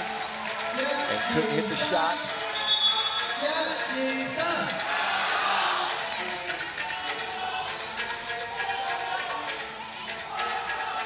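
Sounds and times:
arena crowd voices: 0:00.0 - 0:11.0.

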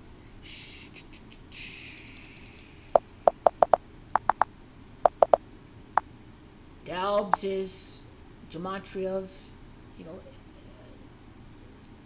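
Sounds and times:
keyboard keys clicking: 0:03.3 - 0:04.4, 0:05.1 - 0:05.4.

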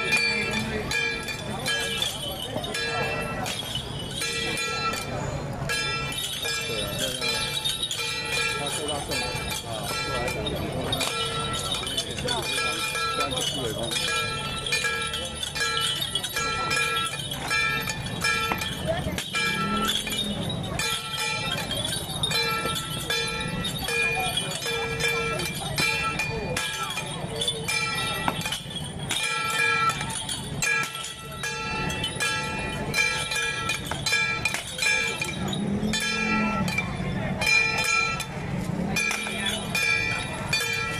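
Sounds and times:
crowd voices: 0:00.0 - 0:40.9
held tone procession music: 0:00.0 - 0:40.9
sharp percussive strikes: 0:00.0 - 0:40.9.

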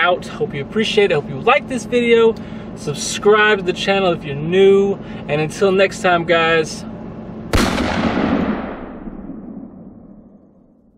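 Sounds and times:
echoing loud blast: 0:07.5 - 0:10.9.

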